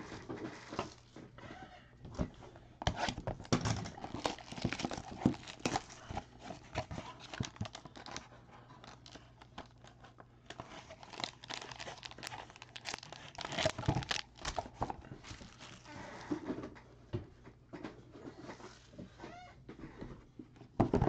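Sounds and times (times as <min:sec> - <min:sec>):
foil wrapper crinkling and tearing: 0:03.6 - 0:16.2.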